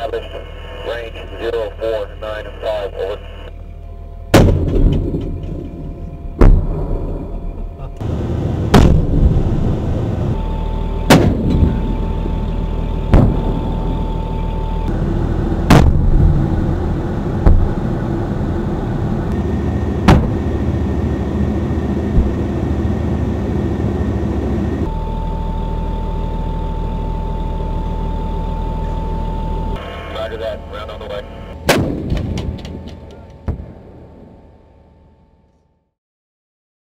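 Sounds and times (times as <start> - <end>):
armoured vehicle engine rumble: 0.0 - 35.6
high whine: 0.0 - 35.8
cannon firing: 4.3 - 7.3, 8.5 - 10.0, 11.0 - 12.1, 13.1 - 14.1, 14.9 - 16.8, 17.4 - 18.0, 19.8 - 21.0, 22.0 - 22.9, 31.6 - 34.1
shells bursting: 4.4 - 7.2, 8.6 - 9.7, 11.1 - 12.1, 13.1 - 14.1, 31.6 - 34.0.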